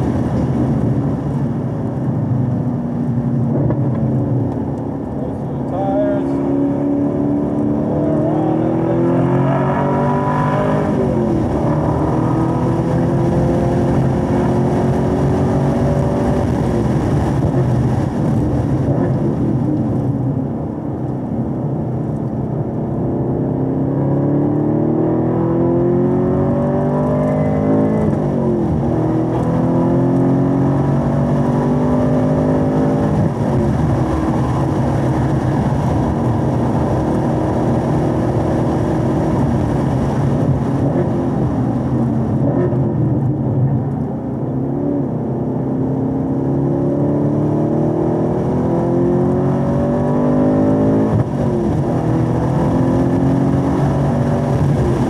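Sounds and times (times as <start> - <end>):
car engine at full throttle: 0.0 - 55.0.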